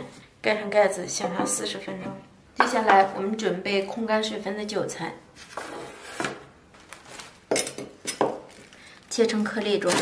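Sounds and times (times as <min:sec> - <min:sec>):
rustling of chives: 0:06.7 - 0:07.5, 0:08.4 - 0:10.0.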